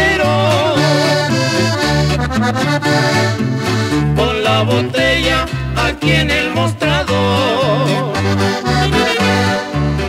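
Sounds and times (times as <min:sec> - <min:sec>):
person singing: 0:00.0 - 0:01.6, 0:04.0 - 0:10.0
bass line: 0:00.0 - 0:10.0
button accordion: 0:00.0 - 0:10.0.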